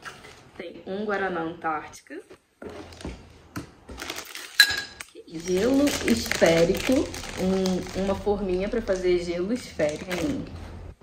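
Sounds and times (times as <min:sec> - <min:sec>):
rustling bag and packaging: 0:02.6 - 0:04.7, 0:05.3 - 0:10.9.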